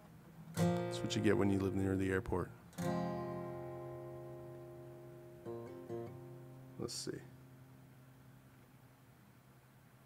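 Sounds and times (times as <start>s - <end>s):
picked guitar notes: 0.5s - 8.4s
acoustic guitar chord ringing: 0.5s - 8.5s.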